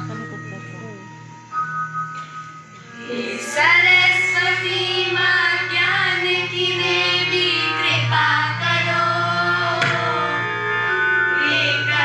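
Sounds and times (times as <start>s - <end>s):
harmonium drone: 0.0s - 12.0s
students singing together: 2.9s - 12.0s.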